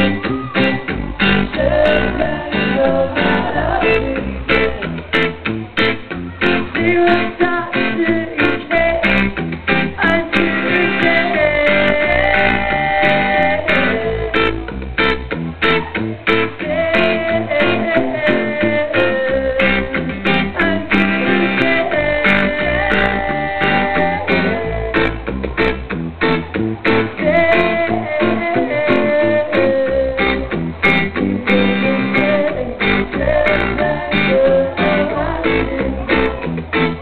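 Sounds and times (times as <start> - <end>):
bass guitar: 0.0 - 37.0
electric guitar bending notes: 0.0 - 37.0.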